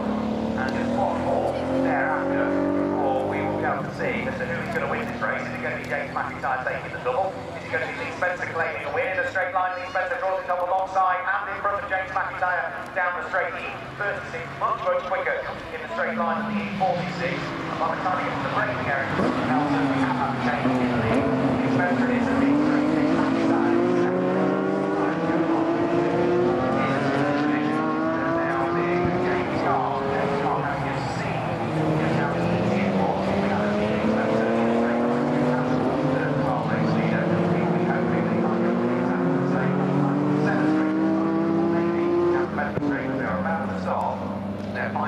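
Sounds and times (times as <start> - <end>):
race cars accelerating past: 0.0 - 45.0.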